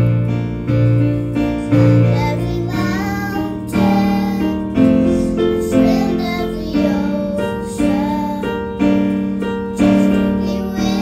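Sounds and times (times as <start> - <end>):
electronic keyboard piano chords: 0.0 - 11.0
children singing: 1.7 - 8.8, 9.8 - 11.0.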